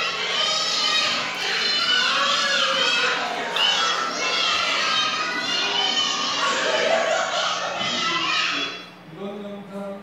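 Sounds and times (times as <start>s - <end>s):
children shouting over loudspeakers: 0.0s - 9.0s.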